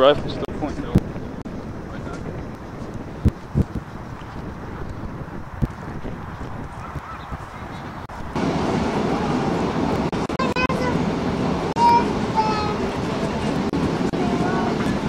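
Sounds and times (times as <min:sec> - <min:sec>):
wind on microphone: 0:00.0 - 0:15.0
voices: 0:08.7 - 0:15.0.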